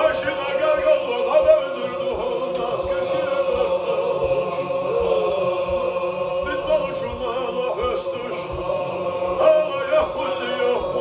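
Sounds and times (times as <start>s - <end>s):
men holding sustained note: 0.0s - 11.0s.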